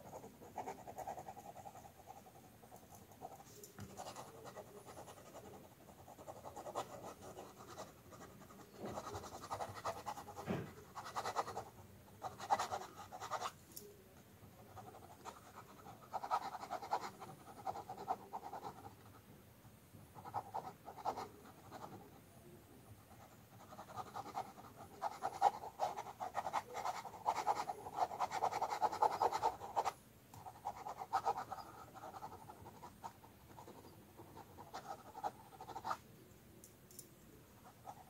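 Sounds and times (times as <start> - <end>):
ballpoint pen scratching on paper: 0.0 - 13.6, 14.5 - 19.2, 20.2 - 22.1, 22.9 - 36.0, 37.5 - 38.0.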